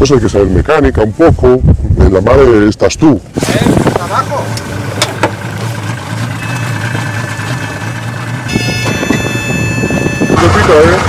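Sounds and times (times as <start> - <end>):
outboard motors idling: 3.3 - 11.0
high-pitched tones: 6.3 - 10.9.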